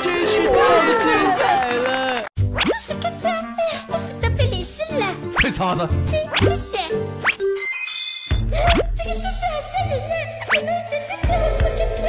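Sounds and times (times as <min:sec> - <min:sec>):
light background music: 0:02.4 - 0:12.0.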